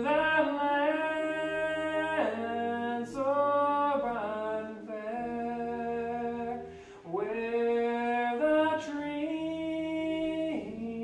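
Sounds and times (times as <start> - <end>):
unaccompanied hymn singing: 0.0 - 11.0.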